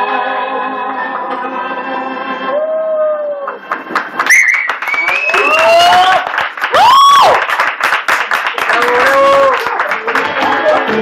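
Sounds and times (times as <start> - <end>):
audience cheering and whooping: 2.5 - 7.6, 8.6 - 10.8
audience clapping: 3.4 - 11.0.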